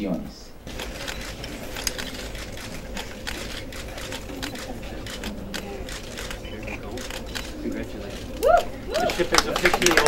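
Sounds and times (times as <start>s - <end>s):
murmur of voices: 0.6s - 10.0s
camera shutters clicking: 0.7s - 9.7s.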